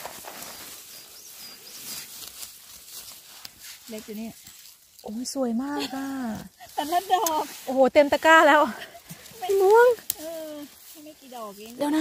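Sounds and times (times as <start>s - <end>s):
dry grass rustling: 0.0s - 12.0s
small songbird chirping: 0.4s - 2.7s.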